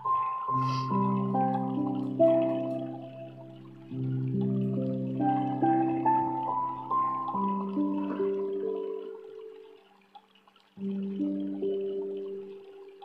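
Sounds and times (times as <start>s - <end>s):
gentle instrumental music: 0.0s - 13.0s.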